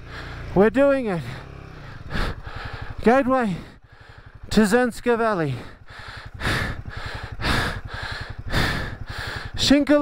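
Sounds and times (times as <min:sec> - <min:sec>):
person breathing hard: 0:00.0 - 0:00.5, 0:01.8 - 0:04.5, 0:05.5 - 0:09.6
motorcycle engine beat: 0:00.0 - 0:10.0.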